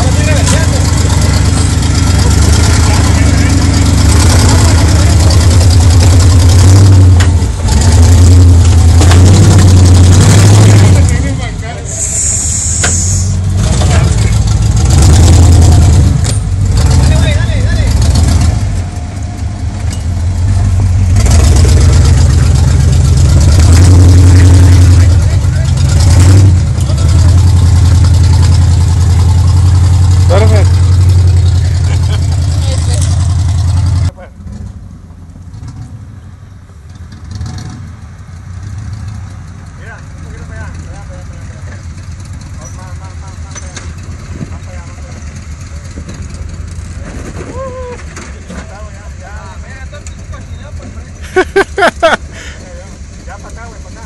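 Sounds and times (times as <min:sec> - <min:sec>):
distant engine running: 0:00.0 - 0:11.6
engine revving under load: 0:00.0 - 0:36.2, 0:37.0 - 0:47.4.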